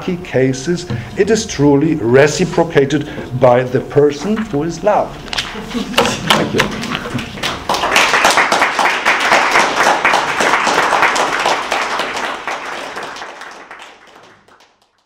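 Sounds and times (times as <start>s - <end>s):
audience applause: 6.3s - 15.0s.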